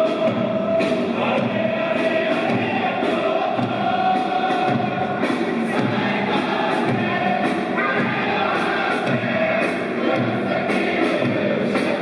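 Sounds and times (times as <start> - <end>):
drumbeats: 0.0 - 12.0
stadium crowd singing in unison: 0.0 - 12.0.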